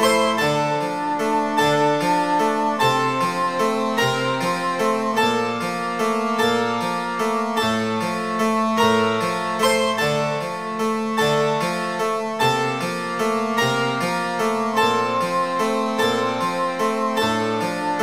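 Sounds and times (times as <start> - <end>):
prepared piano ensemble music: 0.0 - 18.0.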